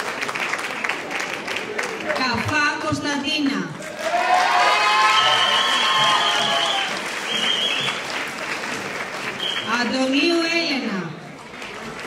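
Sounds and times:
audience applauding: 0:00.0 - 0:02.6, 0:03.8 - 0:09.9, 0:11.3 - 0:12.0
audience cheering: 0:03.9 - 0:08.2.

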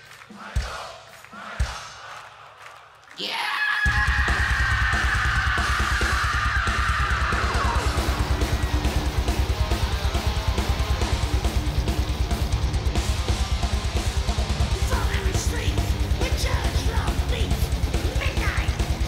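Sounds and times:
singer's high raspy scream: 0:03.2 - 0:08.3
distorted electric guitars: 0:03.8 - 0:19.0
heavy metal band playing live: 0:03.8 - 0:19.0
rapid bass drum beat: 0:03.9 - 0:19.0.

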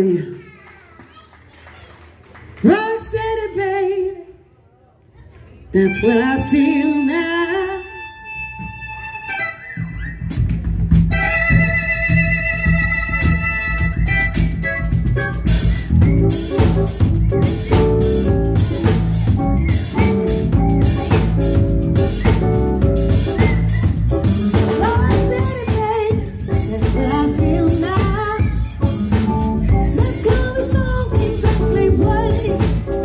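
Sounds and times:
bass guitar: 0:05.8 - 0:33.0
drum kit: 0:09.9 - 0:33.0
electronic keyboard chords: 0:11.0 - 0:33.0.

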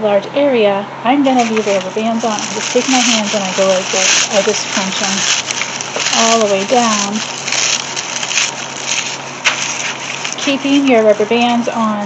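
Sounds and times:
dried leaves crackling and crunching: 0:01.3 - 0:12.0
brittle pieces falling onto paper: 0:01.4 - 0:11.6.

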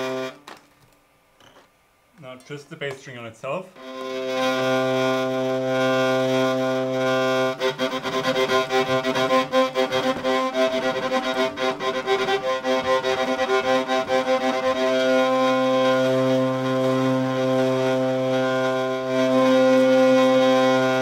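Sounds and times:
hurdy-gurdy drone: 0:00.0 - 0:00.4, 0:03.8 - 0:21.0.

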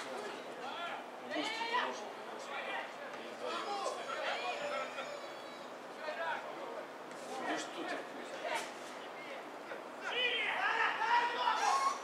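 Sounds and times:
men shouting: 0:10.0 - 0:12.0.

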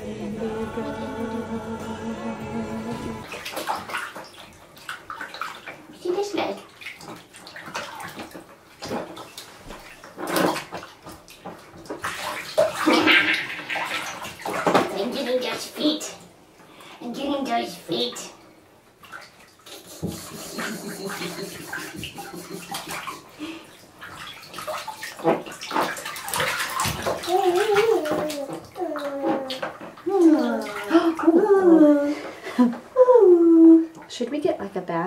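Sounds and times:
music with held tone: 0:00.0 - 0:03.3
water splashing in bathtub: 0:02.9 - 0:34.5.

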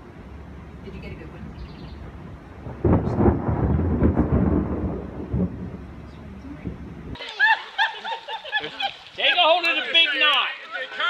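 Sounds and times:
thunder rumble: 0:00.0 - 0:07.2.

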